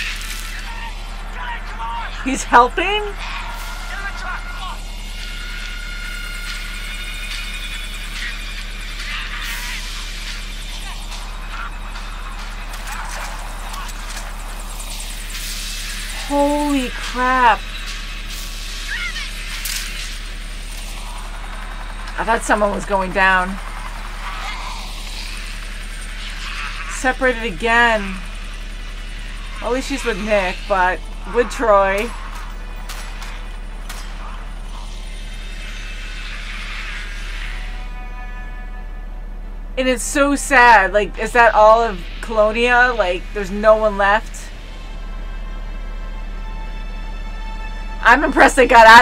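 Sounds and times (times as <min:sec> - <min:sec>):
helicopter rotor beat: 0:00.0 - 0:49.0
woman exclaiming: 0:16.2 - 0:17.6, 0:18.9 - 0:19.4, 0:29.6 - 0:32.1.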